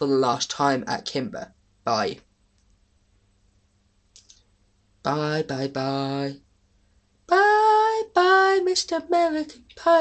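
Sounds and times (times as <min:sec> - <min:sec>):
soft clicks: 0:02.5 - 0:02.8, 0:04.1 - 0:04.5.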